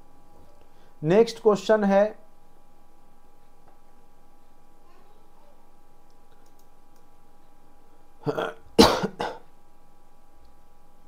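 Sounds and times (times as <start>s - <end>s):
person coughing: 8.2s - 9.5s.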